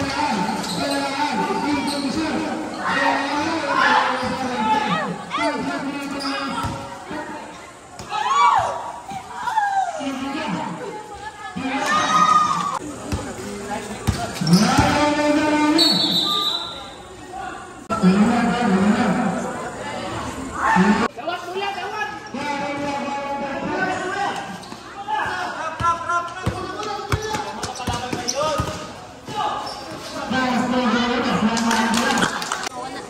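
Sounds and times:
basketball bouncing on court: 0:06.5 - 0:06.9, 0:13.0 - 0:15.2, 0:25.8 - 0:29.4.

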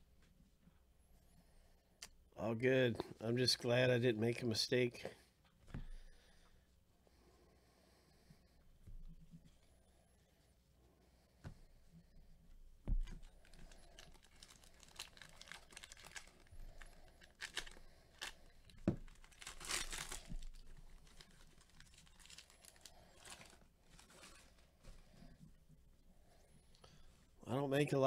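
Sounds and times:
soft handling thumps: 0:05.5 - 0:06.2, 0:08.8 - 0:09.6, 0:12.5 - 0:13.6
foil wrapper tearing and crinkling: 0:13.0 - 0:24.6.

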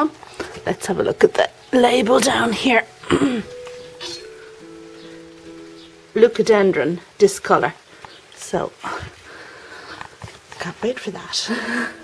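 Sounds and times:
quiet background music: 0:00.0 - 0:12.0
person coughing: 0:03.0 - 0:04.3.

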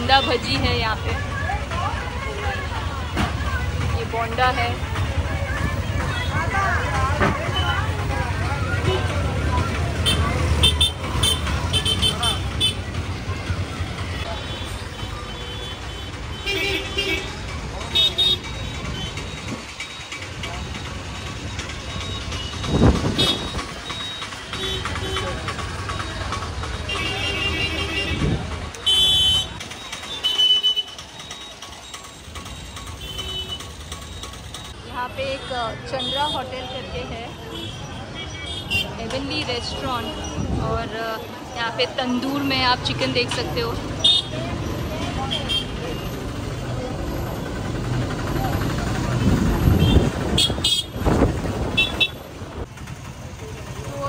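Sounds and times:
chatter of passers-by: 0:00.0 - 0:54.0
vehicle traffic: 0:00.0 - 0:54.0.

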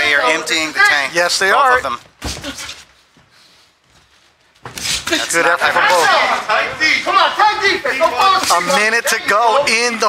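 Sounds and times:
man commentating: 0:00.0 - 0:02.1, 0:05.1 - 0:10.0.

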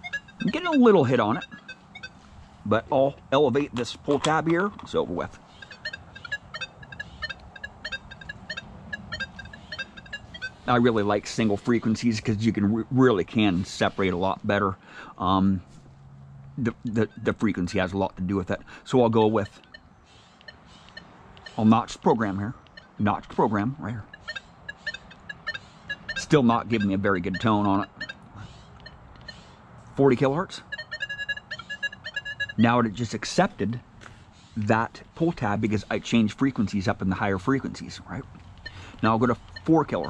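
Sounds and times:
metal detector beeping: 0:00.0 - 0:03.0, 0:03.6 - 0:12.0, 0:16.8 - 0:18.2, 0:19.0 - 0:28.2, 0:28.8 - 0:29.5, 0:30.1 - 0:33.4, 0:35.8 - 0:40.0.

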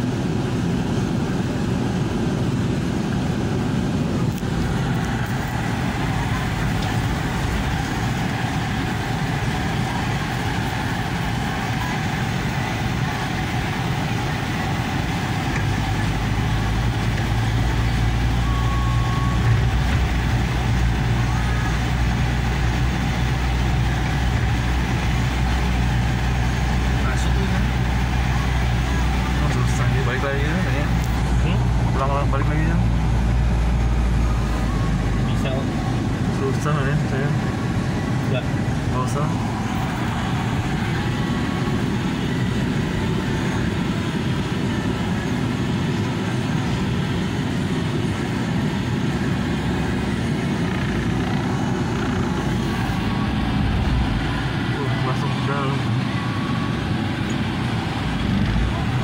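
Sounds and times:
vehicle engine hum inside cabin: 0:00.0 - 0:59.0.

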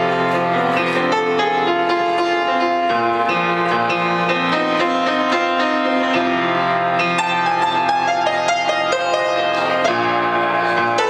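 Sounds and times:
upright piano playing chords: 0:00.0 - 0:11.0.

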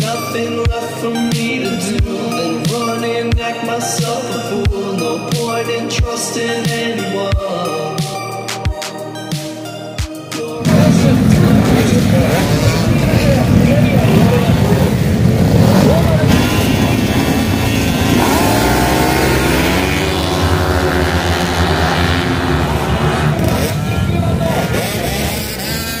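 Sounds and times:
voices: 0:00.0 - 0:08.7, 0:10.2 - 0:26.0
scooter engines revving: 0:10.6 - 0:26.0.

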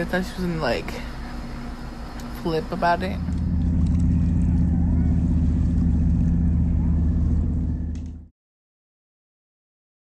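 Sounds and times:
low droning hum: 0:00.0 - 0:08.3.

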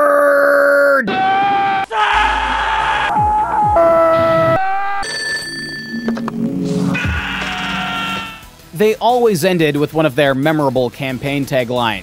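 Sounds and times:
people screaming: 0:00.0 - 0:05.0, 0:07.0 - 0:08.4
music: 0:03.1 - 0:12.0.

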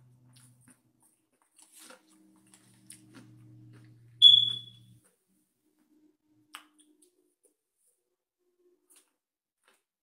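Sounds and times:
faint low hum: 0:02.1 - 0:05.0
high-pitched electronic beep: 0:04.2 - 0:04.8.

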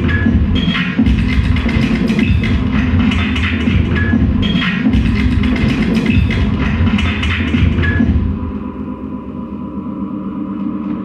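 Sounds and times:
experimental turntable music: 0:00.0 - 0:11.0.

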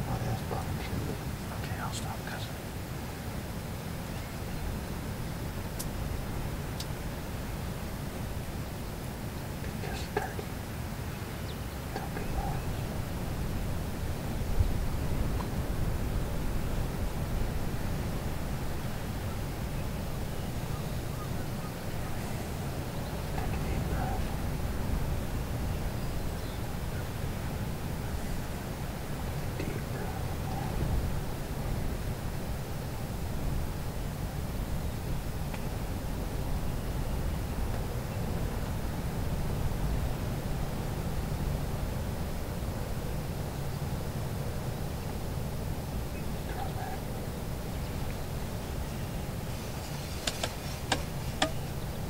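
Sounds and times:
wind rumble on microphone: 0:00.0 - 0:52.0.

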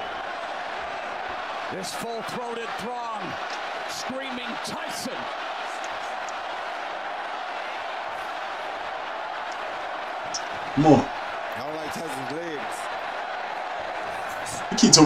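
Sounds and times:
arena crowd noise: 0:00.0 - 0:15.0
person talking: 0:10.8 - 0:11.1, 0:14.5 - 0:15.0.

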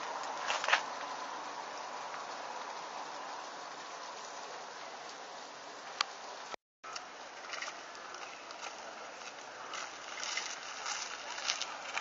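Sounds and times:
steady hissing noise: 0:00.0 - 0:12.0.

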